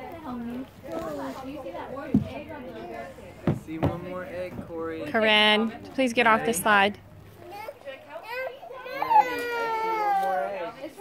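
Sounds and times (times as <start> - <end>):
toddlers babbling: 7.4 - 11.0.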